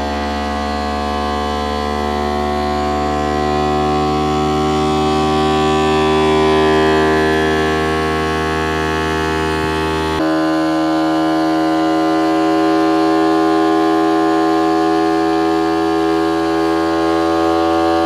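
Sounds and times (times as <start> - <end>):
electric motor whining: 0.0 - 18.0.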